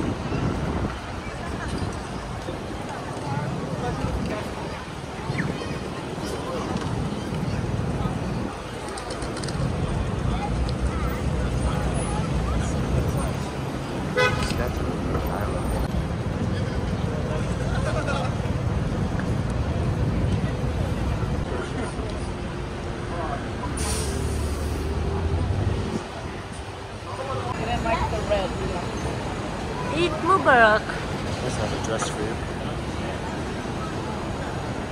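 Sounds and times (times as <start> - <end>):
low rumble of engines: 0.0 - 34.9
passers-by talking: 0.0 - 34.9
car horn toot: 14.2 - 14.5
brief air hiss: 23.8 - 24.9.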